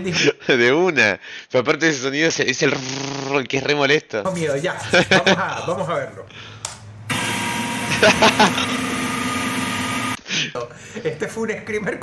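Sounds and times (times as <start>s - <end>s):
harsh noise blast with shriek: 7.1s - 10.2s.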